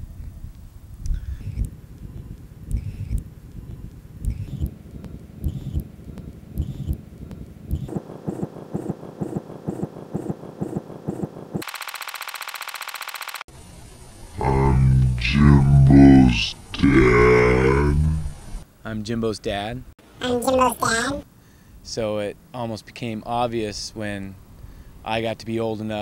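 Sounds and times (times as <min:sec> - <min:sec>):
fast repeating rattle: 0:07.9 - 0:13.5
harsh buzzing digital glitch: 0:11.6 - 0:13.4.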